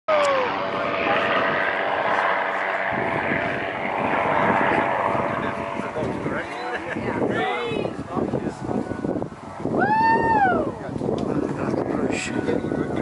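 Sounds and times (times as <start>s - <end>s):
propeller airplane flying overhead: 0.1s - 13.0s
wind buffeting microphone: 0.1s - 13.0s.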